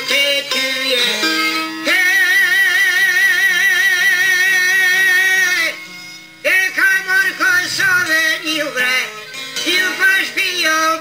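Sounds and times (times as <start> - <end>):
quiet musical accompaniment: 0.0 - 11.0
man singing long note: 6.4 - 9.0.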